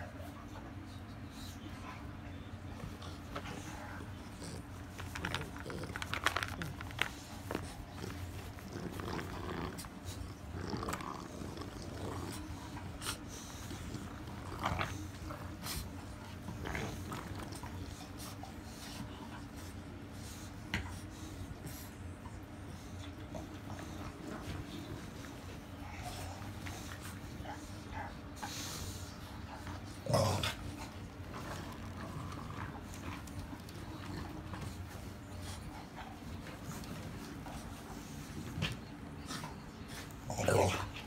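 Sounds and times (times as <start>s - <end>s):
breathy dog noises: 0.0s - 41.0s
toy and bedding rustling: 0.8s - 41.0s.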